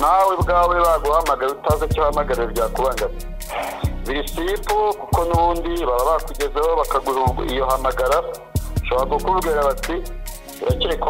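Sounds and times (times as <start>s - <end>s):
rapping over a beat: 0.0s - 11.0s.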